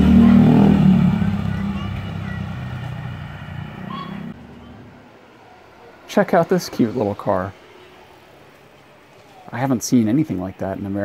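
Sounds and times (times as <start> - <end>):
vehicle engine running: 0.0 - 4.7
faint voices: 0.0 - 11.0.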